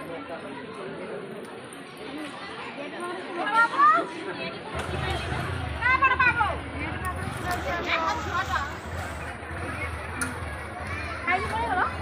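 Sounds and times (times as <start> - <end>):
indistinct chatter of voices: 0.0 - 12.0.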